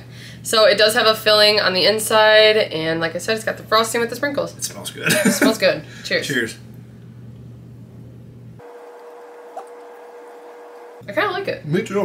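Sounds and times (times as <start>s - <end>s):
low electrical hum: 0.0s - 12.0s.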